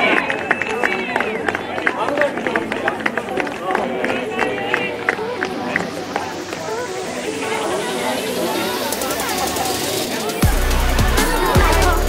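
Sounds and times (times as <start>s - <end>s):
sharp claps: 0.0s - 7.6s
crowd noise: 0.0s - 12.0s
players shouting and cheering: 0.0s - 12.0s
hiss rising in pitch: 4.2s - 12.0s.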